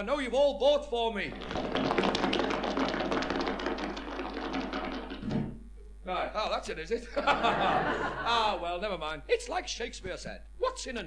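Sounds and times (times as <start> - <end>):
audience applause: 1.3 - 5.2.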